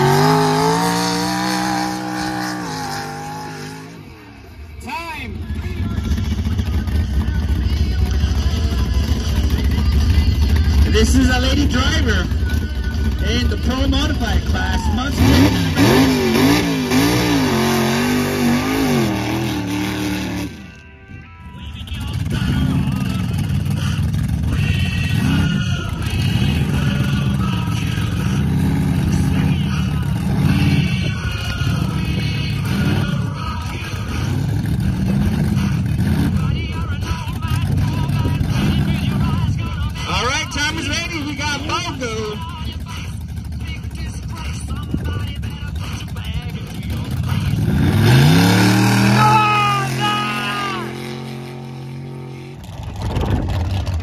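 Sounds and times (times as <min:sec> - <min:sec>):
buggy engine revving: 0:00.0 - 0:20.8, 0:21.8 - 0:54.0
truck engine blipping: 0:00.0 - 0:54.0.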